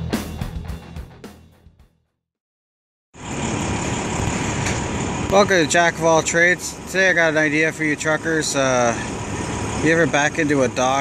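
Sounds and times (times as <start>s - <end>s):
diesel truck engine idling: 3.2s - 11.0s.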